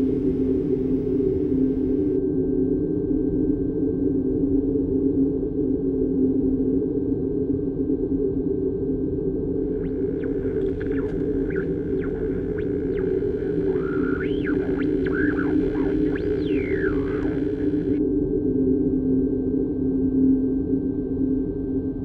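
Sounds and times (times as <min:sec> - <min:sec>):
low synthesized drone: 0:00.0 - 0:02.2, 0:09.6 - 0:18.0
high gliding tones: 0:09.6 - 0:18.0.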